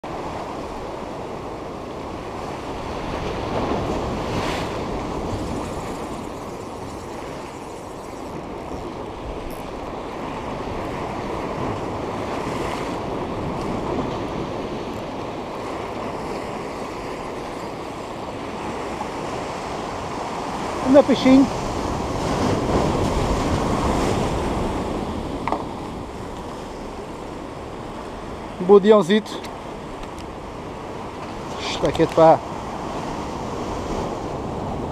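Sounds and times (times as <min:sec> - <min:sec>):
waves breaking on rocks: 0:00.1 - 0:34.9.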